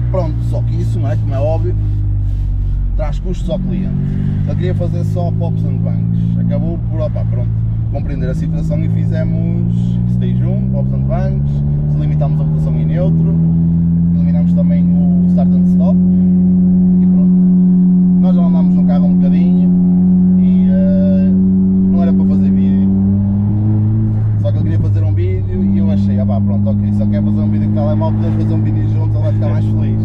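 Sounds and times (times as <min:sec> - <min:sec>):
car engine droning: 0:00.0 - 0:30.0.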